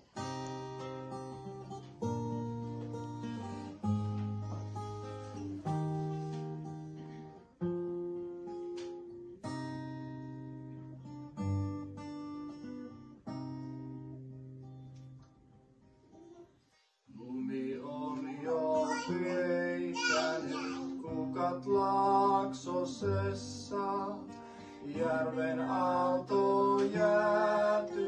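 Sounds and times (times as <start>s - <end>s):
acoustic guitar chords strummed: 0.0s - 15.8s, 17.2s - 28.0s.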